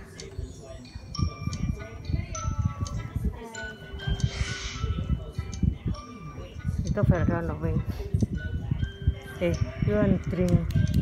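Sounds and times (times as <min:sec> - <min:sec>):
music of short held notes: 0:00.1 - 0:11.0.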